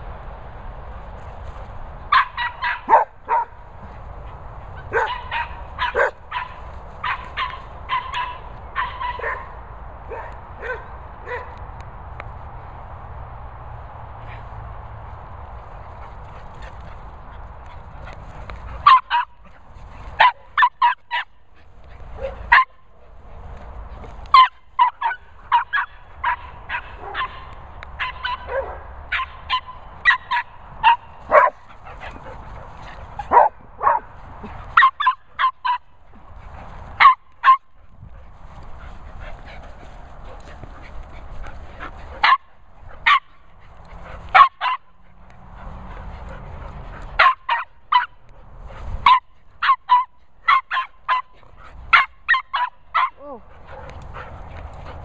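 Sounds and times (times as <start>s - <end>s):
dog barking: 2.1s - 3.6s, 4.8s - 11.6s, 18.8s - 19.4s, 20.2s - 21.4s, 22.2s - 22.8s, 24.3s - 31.6s, 33.2s - 34.1s, 34.8s - 36.0s, 37.0s - 37.7s, 42.1s - 43.4s, 44.3s - 45.0s, 47.2s - 48.2s, 49.0s - 53.9s.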